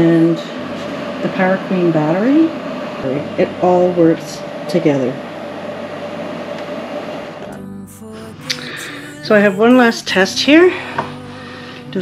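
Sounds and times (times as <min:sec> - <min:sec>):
background music: 0:00.0 - 0:06.0, 0:07.4 - 0:12.0.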